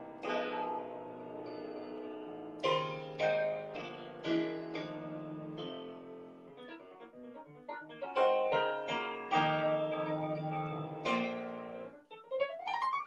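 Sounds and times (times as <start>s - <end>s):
piano playing slow hymn: 0.0s - 12.1s.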